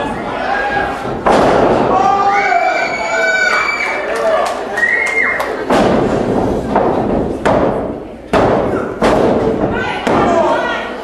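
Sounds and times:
crowd shouting: 0:00.0 - 0:05.6.

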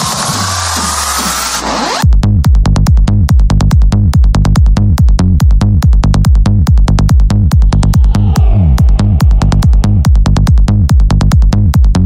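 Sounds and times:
electronic hardcore dance music: 0:00.0 - 0:02.0, 0:04.2 - 0:12.0
low bass drone: 0:02.1 - 0:11.8
noise sweep: 0:06.7 - 0:10.7
rising synth tone: 0:06.8 - 0:10.7.

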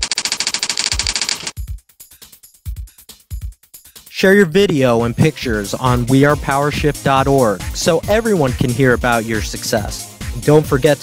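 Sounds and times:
typewriter typing clicks: 0:00.0 - 0:01.5.

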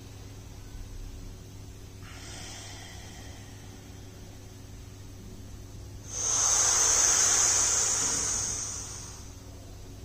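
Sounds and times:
hissing breath through pursed lips: 0:02.0 - 0:04.2, 0:06.1 - 0:09.4.

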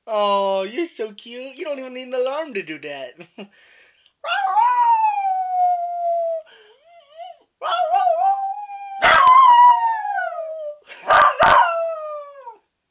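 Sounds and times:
small dog howling: 0:04.2 - 0:12.6.

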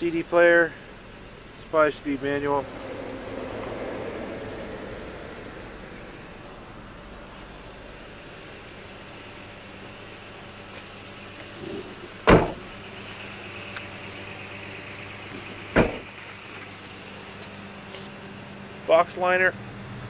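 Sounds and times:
car door slamming: 0:11.6 - 0:12.7, 0:15.6 - 0:16.2.

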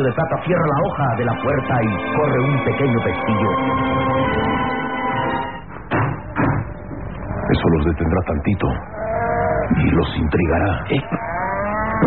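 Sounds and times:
music cue: 0:00.0 - 0:07.3.

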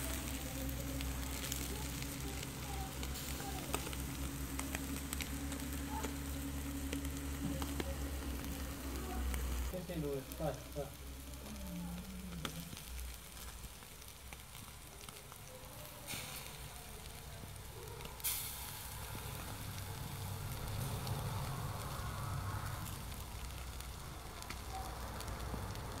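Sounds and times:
fish sizzling on charcoal grill: 0:00.0 - 0:26.0
small crackles: 0:00.0 - 0:26.0.

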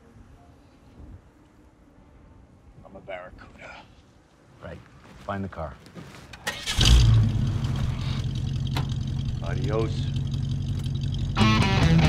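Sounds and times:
car engine starting and idling: 0:06.4 - 0:12.0.

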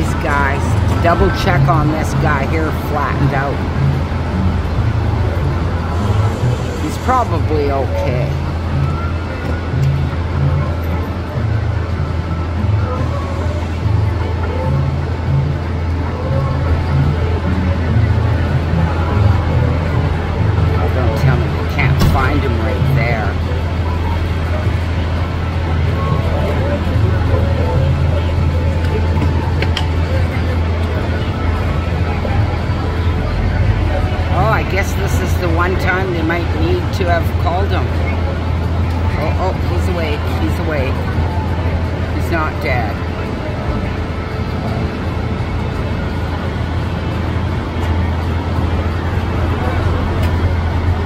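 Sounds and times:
faint voices: 0:00.0 - 0:51.0
low engine rumble: 0:00.0 - 0:51.0.

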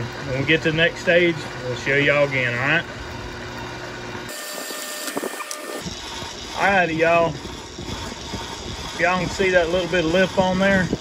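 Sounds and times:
electric motor spinning brush: 0:00.0 - 0:11.0.

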